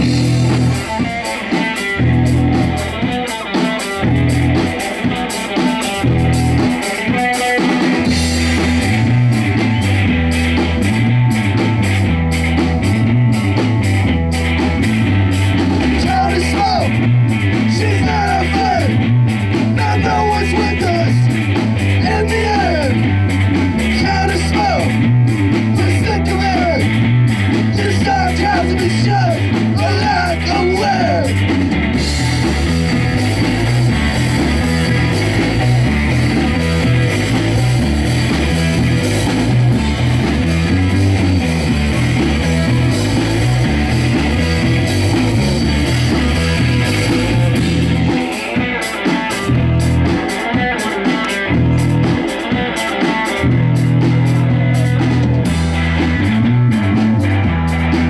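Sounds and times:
electric bass: 0:00.0 - 0:58.0
electric guitar: 0:00.0 - 0:58.0.

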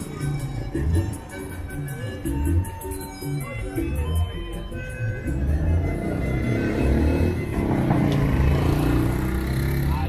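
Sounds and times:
music playing: 0:00.0 - 0:10.0
motorcycle passing: 0:05.6 - 0:10.0.

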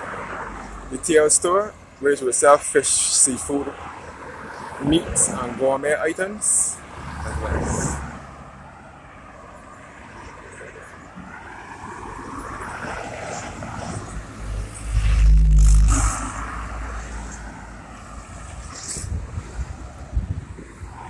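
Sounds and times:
cars and vans passing: 0:00.0 - 0:21.0.

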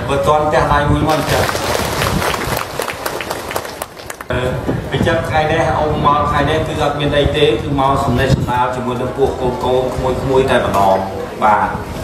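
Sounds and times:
audience clapping: 0:01.1 - 0:04.3
crowd noise: 0:01.1 - 0:05.3.

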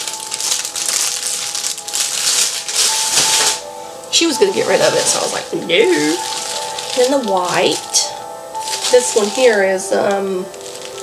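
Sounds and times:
plastic wrap rustling and crinkling: 0:00.0 - 0:11.0.

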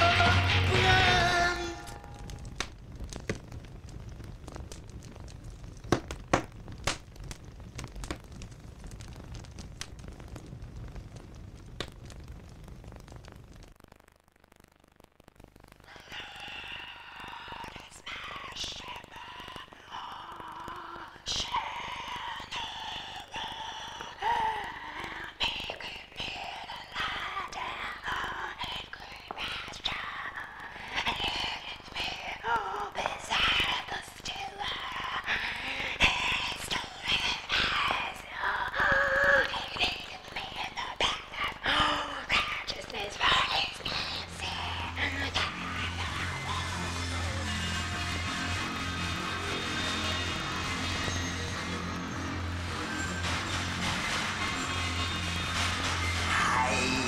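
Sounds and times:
fire crackling: 0:00.0 - 0:57.0
person speaking: 0:37.2 - 0:47.0.

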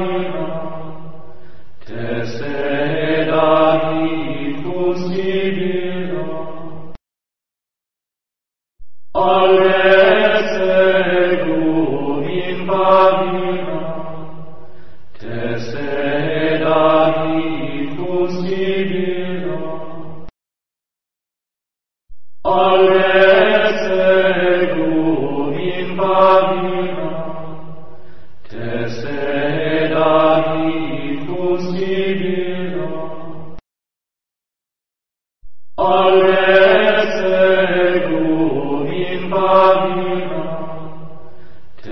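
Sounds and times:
person singing a chant: 0:00.0 - 0:06.9, 0:09.2 - 0:20.3, 0:22.4 - 0:33.6, 0:35.8 - 0:41.9.

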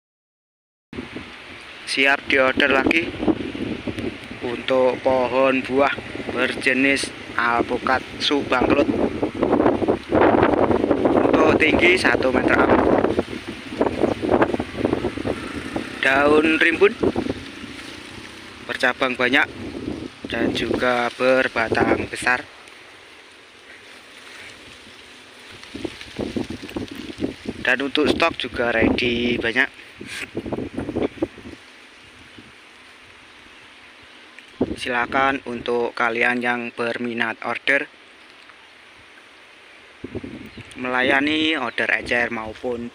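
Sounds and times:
wind blowing across microphone: 0:01.0 - 0:37.9, 0:38.5 - 0:42.9.

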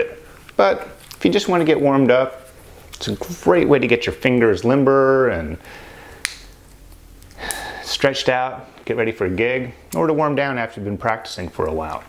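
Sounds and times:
man drawing a breath: 0:05.6 - 0:06.3, 0:07.3 - 0:07.9.

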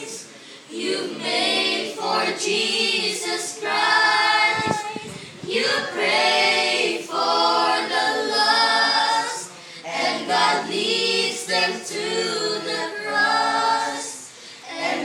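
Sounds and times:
children singing unaccompanied: 0:00.0 - 0:15.0.

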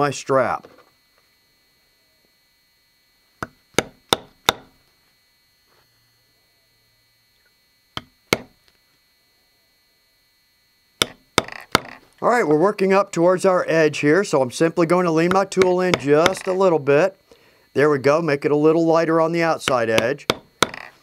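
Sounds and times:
mallet tapping stamp into leather: 0:03.4 - 0:04.7, 0:08.0 - 0:08.5, 0:11.0 - 0:11.9, 0:19.7 - 0:20.9.

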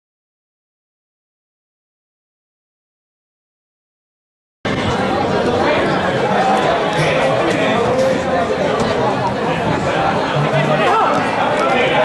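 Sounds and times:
players and onlookers chattering: 0:04.7 - 0:12.0.

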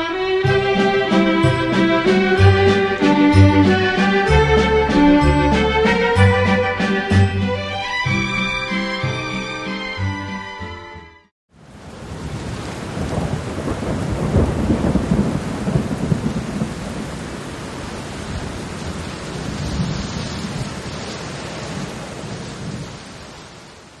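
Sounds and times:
steady rain: 0:00.1 - 0:07.3, 0:11.5 - 0:24.0.

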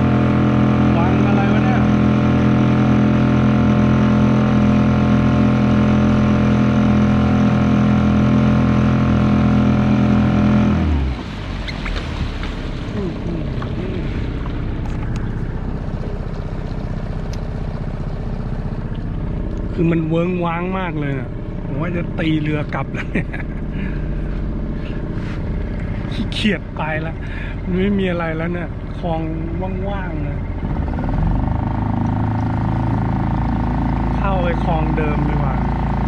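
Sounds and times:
outboard motor running: 0:00.0 - 0:36.0
water noise: 0:00.0 - 0:36.0.

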